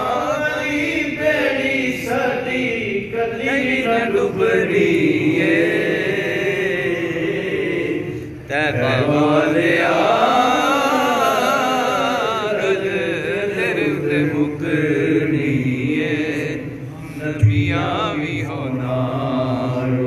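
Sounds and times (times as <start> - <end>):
man chanting into a microphone: 0.0 - 20.0.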